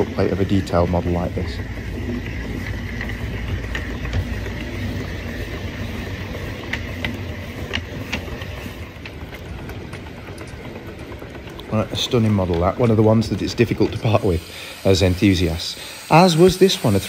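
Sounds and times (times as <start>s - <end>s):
steam locomotive rumbling: 0.0s - 17.0s.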